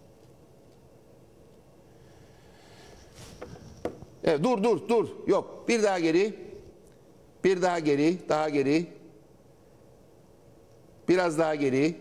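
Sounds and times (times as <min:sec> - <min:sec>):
faint background hiss: 0:00.0 - 0:12.0
short breath: 0:02.0 - 0:03.8
man speaking: 0:04.2 - 0:06.6, 0:07.4 - 0:09.0, 0:11.1 - 0:12.0.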